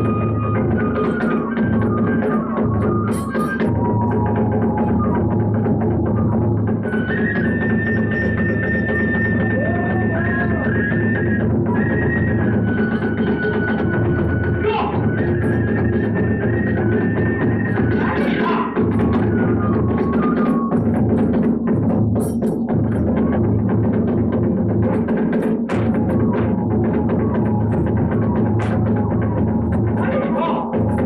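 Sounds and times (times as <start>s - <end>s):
bamboo flute high notes: 0.0s - 21.3s, 25.8s - 30.8s
fast continuous drumming: 0.0s - 31.0s.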